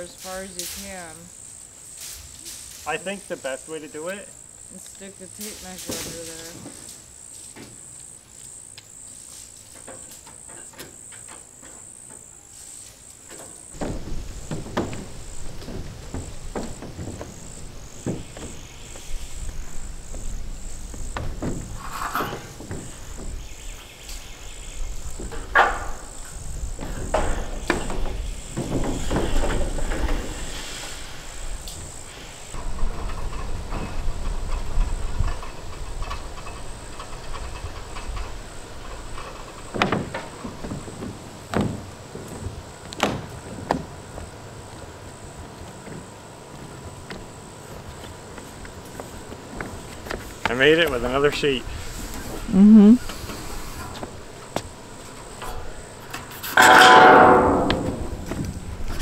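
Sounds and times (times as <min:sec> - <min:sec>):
insects trilling: 0:00.0 - 0:59.0
knocks and clatters: 0:13.2 - 0:24.2, 0:25.0 - 0:31.0, 0:32.5 - 0:44.3, 0:53.8 - 0:59.0.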